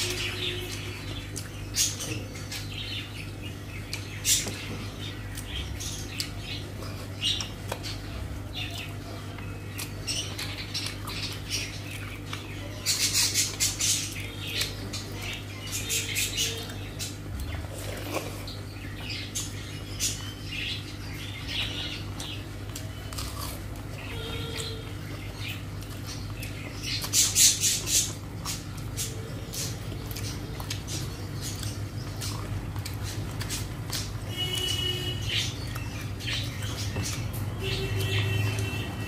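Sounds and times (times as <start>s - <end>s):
wet chewing squelches: 0.0s - 39.0s.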